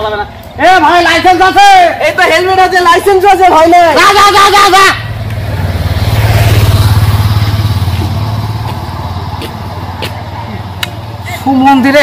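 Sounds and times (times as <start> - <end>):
motorcycle engine passing: 3.7 - 11.4.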